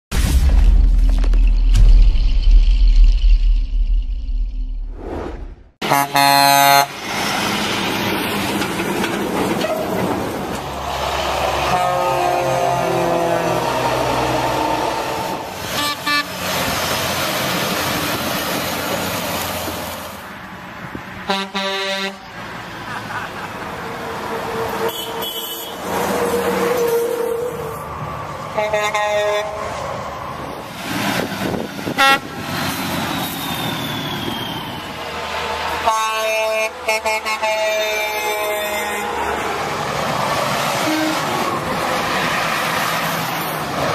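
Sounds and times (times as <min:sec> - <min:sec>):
road noise: 0:02.8 - 0:43.9
truck air horn blasts: 0:05.8 - 0:07.0, 0:11.4 - 0:16.4, 0:21.3 - 0:22.4, 0:24.5 - 0:27.8, 0:28.5 - 0:29.7, 0:31.9 - 0:32.3, 0:35.8 - 0:39.2, 0:40.8 - 0:41.5.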